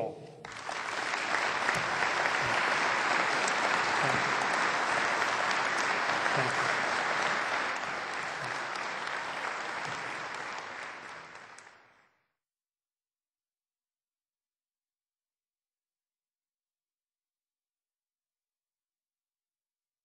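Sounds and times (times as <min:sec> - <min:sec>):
large crowd applauding: 0:00.4 - 0:12.1.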